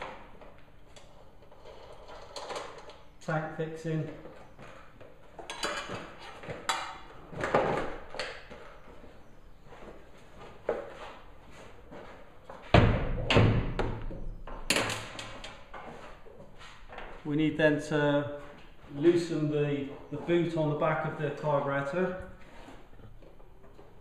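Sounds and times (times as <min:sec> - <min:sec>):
knocks and thuds: 0:12.7 - 0:14.1.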